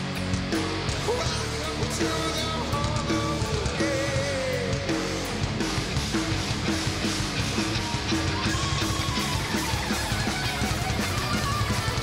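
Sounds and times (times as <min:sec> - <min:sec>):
bass guitar: 0:00.0 - 0:12.0
distorted electric guitars: 0:00.0 - 0:12.0
drums: 0:00.0 - 0:12.0
heavy metal band playing: 0:00.0 - 0:12.0.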